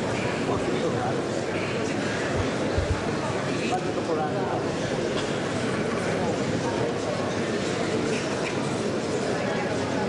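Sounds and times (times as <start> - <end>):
hubbub of many people talking: 0.0 - 10.0.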